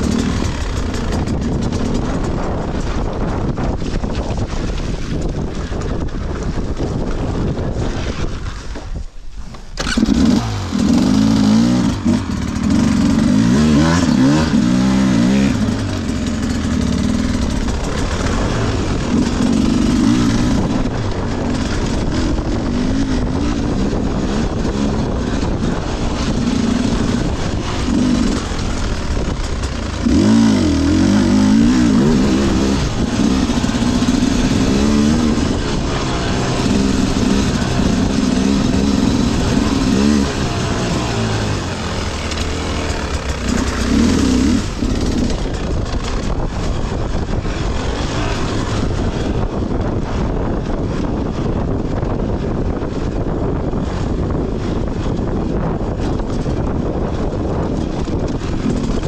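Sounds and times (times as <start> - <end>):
dirt bike engine revving: 0.0 - 6.0, 9.8 - 59.0.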